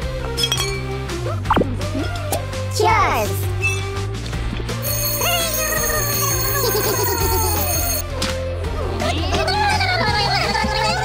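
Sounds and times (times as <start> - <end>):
background music: 0.0 - 11.0
electronic alarm ringing: 4.8 - 8.0
gliding electronic chirps: 4.8 - 8.0.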